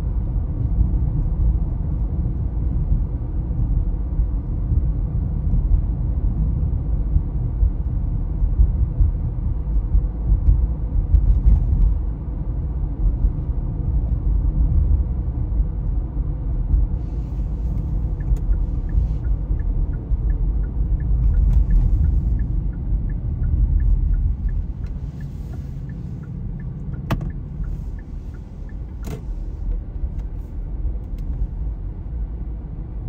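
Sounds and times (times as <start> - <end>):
car cabin rumble and road noise: 0.0 - 33.0
turn signal ticking: 0.0 - 33.0.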